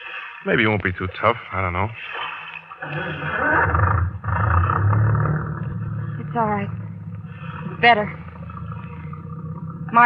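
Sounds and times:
boat engine roaring: 0.5s - 10.0s.

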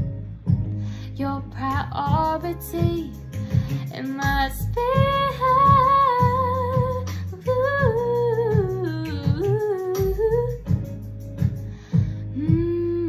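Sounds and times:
instrumental backing with bass pulse: 0.0s - 13.0s
woman singing: 1.2s - 10.9s, 12.4s - 13.0s.

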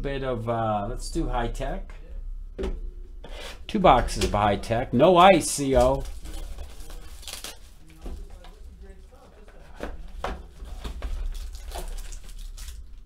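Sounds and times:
low steady hum: 0.0s - 13.0s
plastic wrap crinkling and tearing: 5.2s - 13.0s.

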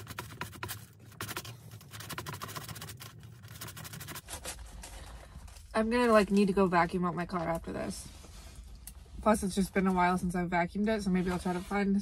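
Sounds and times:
fork and knife scraping cardboard: 0.0s - 4.9s.

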